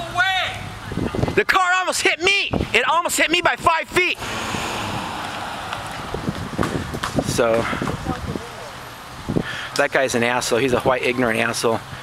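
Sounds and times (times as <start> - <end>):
outdoor street noise: 0.0 - 12.0
wind noise on microphone: 0.6 - 1.6, 2.3 - 3.0, 4.2 - 9.7.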